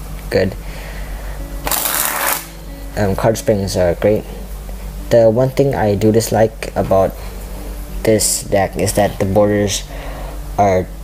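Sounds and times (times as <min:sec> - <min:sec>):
background music: 0:00.0 - 0:11.0
playing cards flicking: 0:01.6 - 0:02.5.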